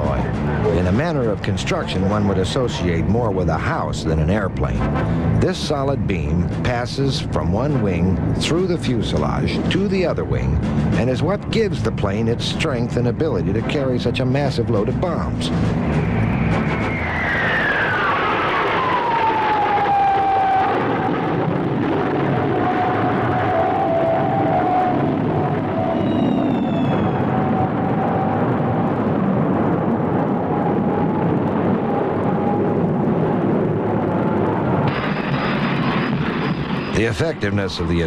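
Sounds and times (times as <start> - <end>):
jet engine whine: 0.0 - 12.8, 13.8 - 38.0
jet engine rumble: 0.0 - 38.0.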